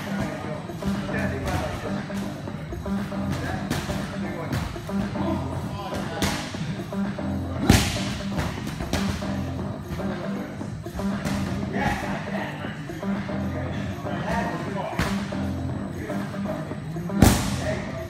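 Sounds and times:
background music with beat: 0.0s - 18.0s.

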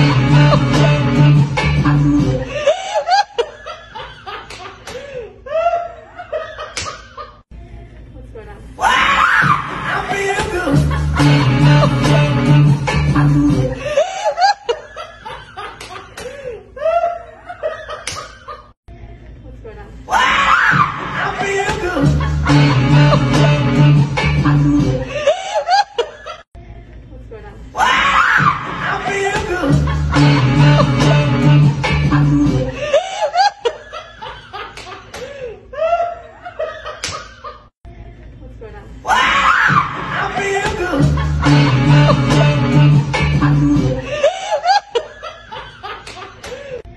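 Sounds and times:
music: 0.0s - 2.6s, 9.4s - 13.8s, 20.7s - 25.2s, 28.4s - 32.9s, 39.7s - 44.1s
loud voices: 0.0s - 2.9s, 8.4s - 14.2s, 19.9s - 25.5s, 27.5s - 33.2s, 38.8s - 44.8s
woman laughing: 2.3s - 7.4s, 13.6s - 18.8s, 21.2s - 22.6s, 24.9s - 26.4s, 28.8s - 30.3s, 32.6s - 37.7s, 40.1s - 42.5s, 43.4s - 46.8s
sharp slaps or claps: 4.4s - 5.1s, 6.8s - 7.0s, 18.0s - 18.3s, 34.7s - 35.3s, 37.0s - 37.3s.

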